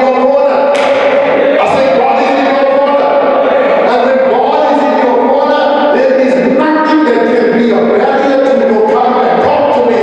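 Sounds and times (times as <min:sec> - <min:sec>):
man preaching loudly: 0:00.0 - 0:00.9, 0:01.6 - 0:10.0.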